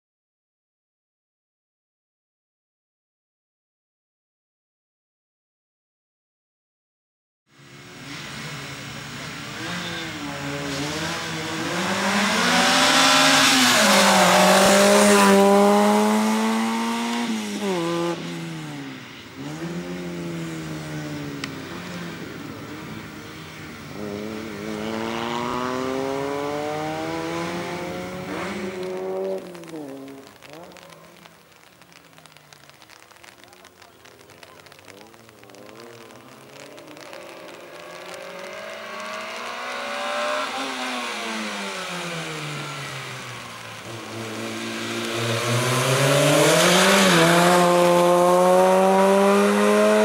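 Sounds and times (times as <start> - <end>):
race car engine revving: 8.0 - 18.8, 19.4 - 31.2, 34.1 - 50.0.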